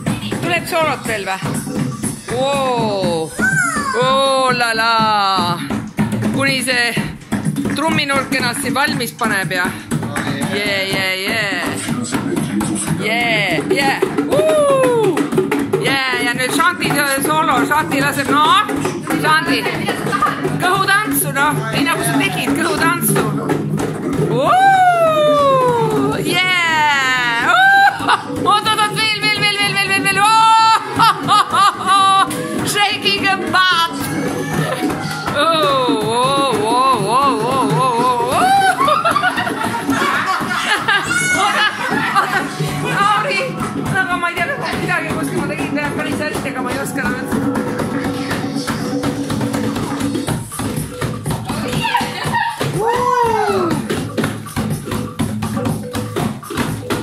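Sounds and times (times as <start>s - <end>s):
hand drum playing: 0.0s - 57.0s
person whooping: 14.3s - 15.2s, 24.3s - 26.2s, 27.3s - 28.2s, 38.2s - 39.0s, 51.7s - 53.9s.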